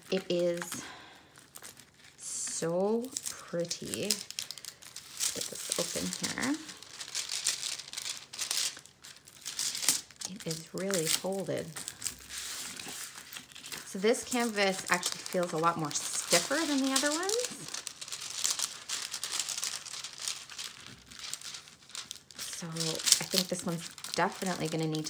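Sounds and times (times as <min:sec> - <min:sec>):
plastic film crinkling: 0:00.0 - 0:25.0.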